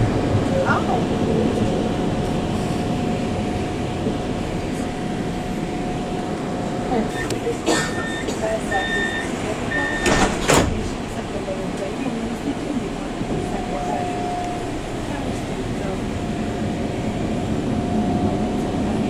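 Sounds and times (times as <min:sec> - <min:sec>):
tram wheels rumbling on track: 0:00.0 - 0:19.0
short electronic beeps: 0:07.1 - 0:10.2.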